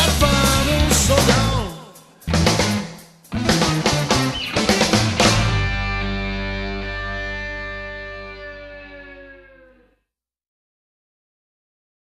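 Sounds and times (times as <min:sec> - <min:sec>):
distorted electric guitar chord: 0:03.4 - 0:09.9.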